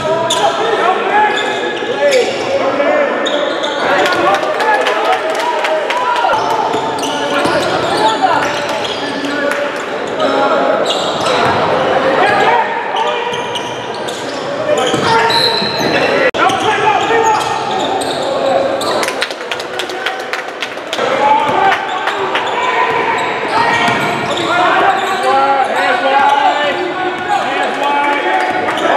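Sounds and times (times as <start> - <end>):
many voices talking: 0.0 - 28.9.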